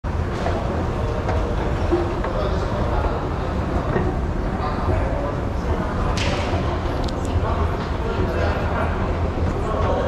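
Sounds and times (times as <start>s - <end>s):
faint indistinct voices: 0.1s - 10.0s.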